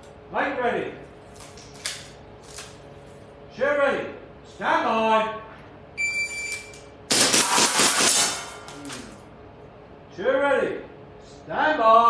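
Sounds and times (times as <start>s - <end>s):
air pistol shots: 7.1s - 9.2s
metallic clinks on steel targets: 7.2s - 9.2s.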